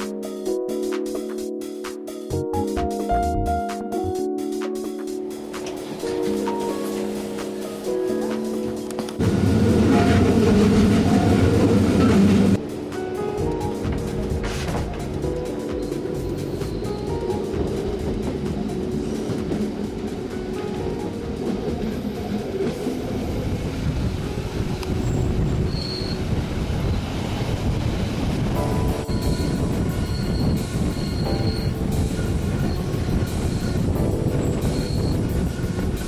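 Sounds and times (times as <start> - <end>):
background music with held tones: 0.0 - 22.7, 28.6 - 36.0
train rumbling on track: 2.3 - 36.0
wheel squeal: 25.0 - 26.3, 29.0 - 36.0.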